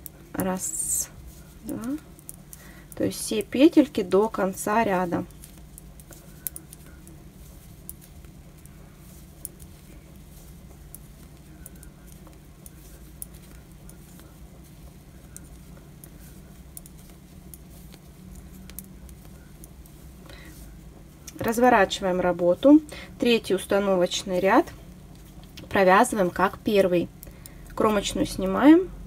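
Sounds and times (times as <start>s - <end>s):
steady low hum: 0.0s - 29.0s
knitting needles clicking: 1.4s - 22.0s.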